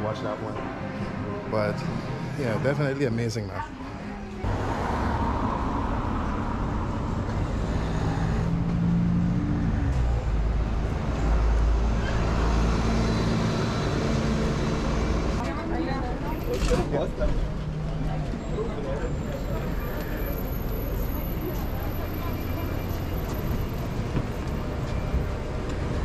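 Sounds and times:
street traffic: 0.0 - 26.0
bus engine rumbling: 4.3 - 26.0.

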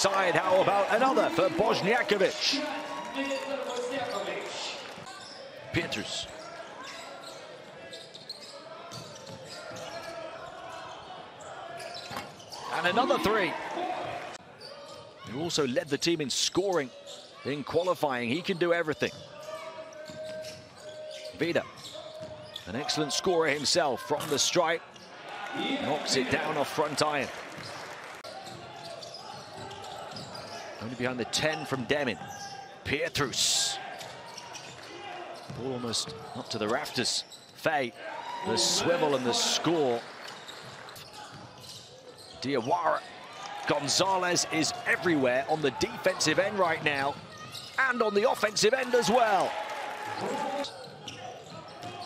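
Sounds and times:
arena crowd noise: 0.0 - 52.0
basketball bouncing on hardwood court: 22.2 - 22.4.

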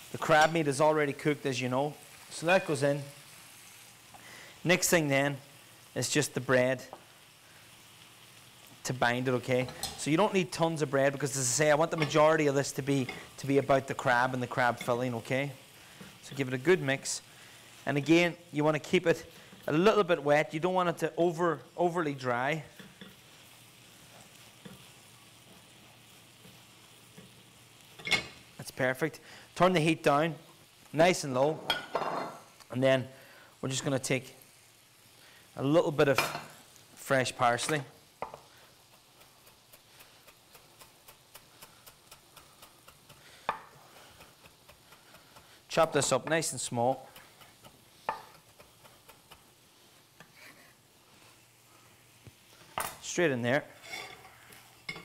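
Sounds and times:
mushrooms sizzling in a frying pan: 0.0 - 55.0
wooden spoon scraping in a pot: 37.6 - 52.8, 53.5 - 55.0.

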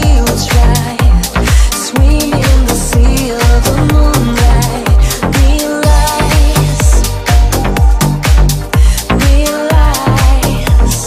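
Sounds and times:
deep house music: 0.0 - 11.0
four-on-the-floor kick drum: 0.0 - 11.0
sliding bass line: 0.0 - 11.0.

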